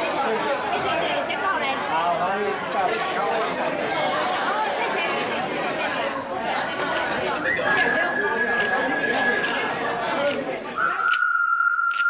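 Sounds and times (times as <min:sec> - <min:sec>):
people chattering: 0:00.0 - 0:12.0
high whistle-like tone: 0:07.5 - 0:09.8, 0:10.8 - 0:12.0.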